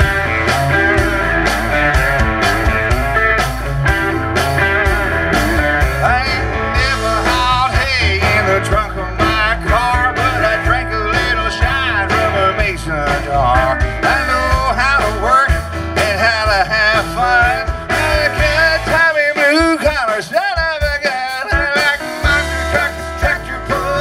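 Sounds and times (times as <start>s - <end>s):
acoustic guitar: 0.0s - 24.0s
drum kit: 0.0s - 24.0s
electric bass: 0.0s - 24.0s.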